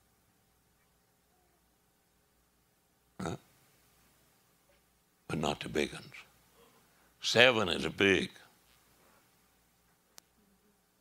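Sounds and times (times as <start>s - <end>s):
person's short throaty noise: 3.2s - 3.5s.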